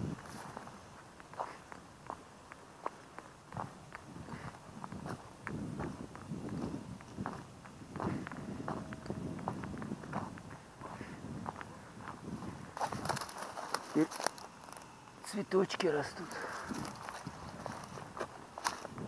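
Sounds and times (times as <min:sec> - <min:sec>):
footsteps on rubble and grass: 0:00.0 - 0:19.0.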